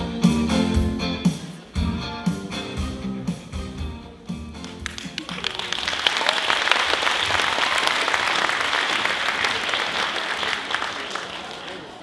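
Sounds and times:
live band playing: 0.0 - 6.0
audience applause: 4.6 - 12.0.

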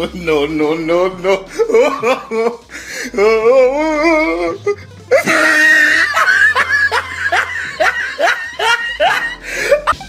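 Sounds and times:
person laughing hard: 1.5 - 10.0.

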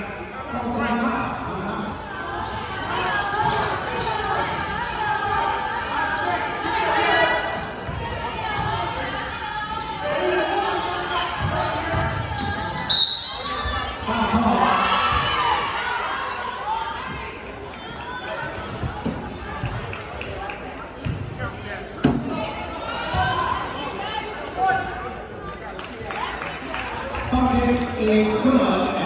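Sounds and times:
spectators' voices: 0.0 - 29.0.

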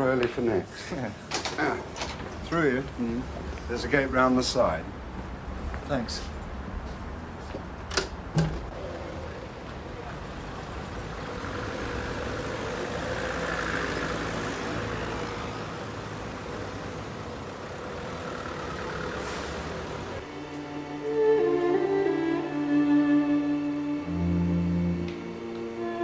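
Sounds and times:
traffic rumble: 0.0 - 20.6
bowed string music: 20.2 - 26.0.

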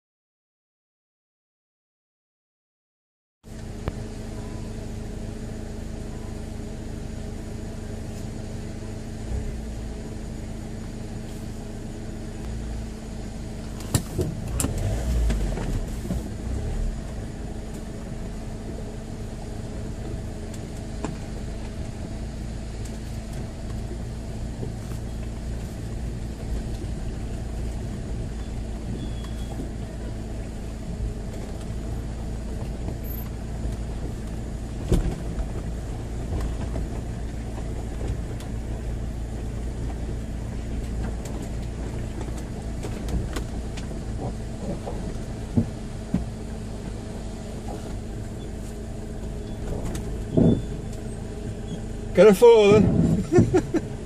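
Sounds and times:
car engine running at low speed: 3.4 - 54.0.

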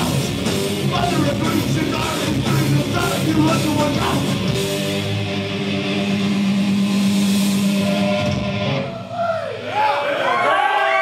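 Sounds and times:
distorted guitar and bass chord: 0.0 - 9.0.

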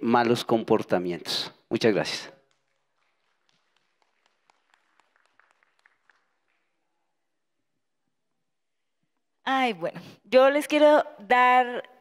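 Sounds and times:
sparse applause: 2.5 - 6.8.

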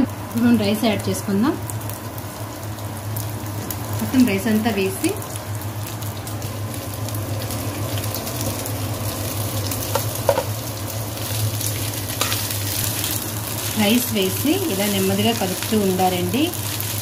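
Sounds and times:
rice sizzling in hot oil: 0.0 - 17.0
spatula knocking against pan: 9.9 - 10.5.

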